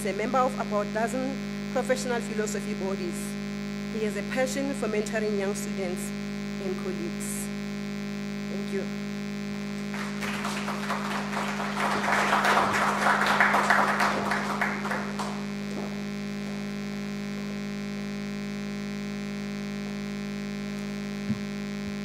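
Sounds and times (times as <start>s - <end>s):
electrical mains hum: 0.0s - 22.0s
audience applause: 9.8s - 15.6s.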